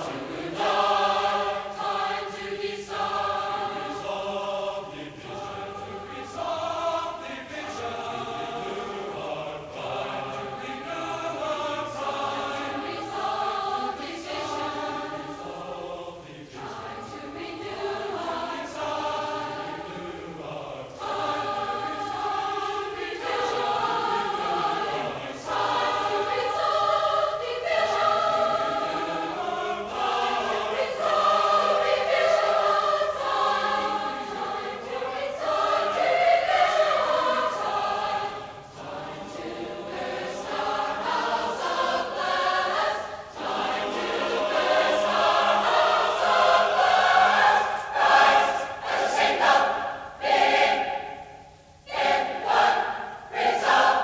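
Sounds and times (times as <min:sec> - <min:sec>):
choir singing in parts: 0:00.0 - 0:54.0.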